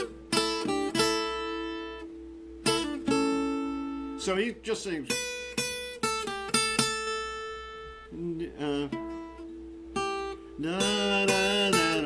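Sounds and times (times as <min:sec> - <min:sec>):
acoustic guitar picking notes: 0:00.0 - 0:12.0.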